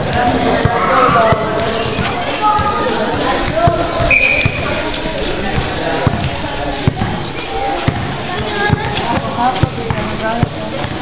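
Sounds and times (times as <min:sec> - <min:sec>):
basketball bouncing on court: 0:00.0 - 0:04.9, 0:05.5 - 0:11.0
crowd voices: 0:00.0 - 0:11.0.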